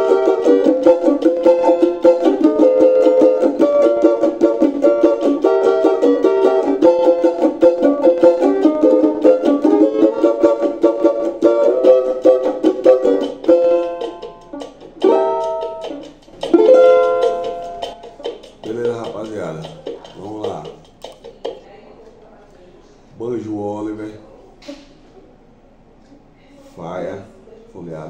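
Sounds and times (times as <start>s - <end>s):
banjo strumming: 0.0s - 21.3s.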